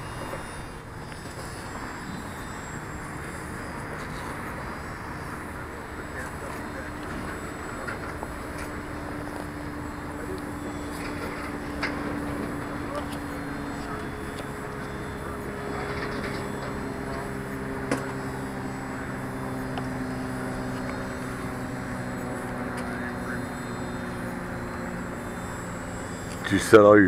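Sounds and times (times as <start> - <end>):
propeller aircraft drone: 0.0 - 27.0.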